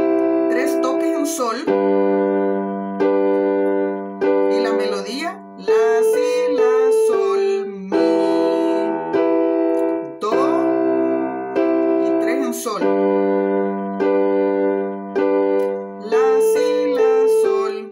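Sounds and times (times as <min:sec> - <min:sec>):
piano block chords: 0:00.0 - 0:17.9.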